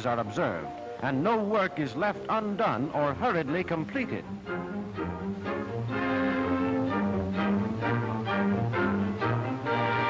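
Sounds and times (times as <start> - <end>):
bowed strings sustained notes: 0.0 - 10.0
orchestral film music: 0.0 - 10.0.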